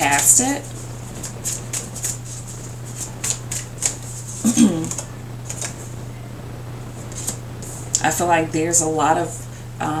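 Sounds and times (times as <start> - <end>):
cards being shuffled: 0.0 - 5.9, 7.0 - 7.9
steady low hum: 0.0 - 10.0.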